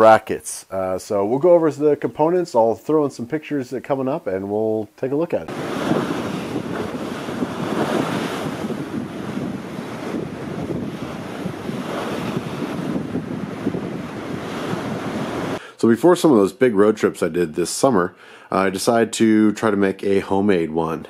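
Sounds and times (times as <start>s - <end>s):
wind blowing: 5.3s - 17.7s
sea waves surging: 5.5s - 15.8s.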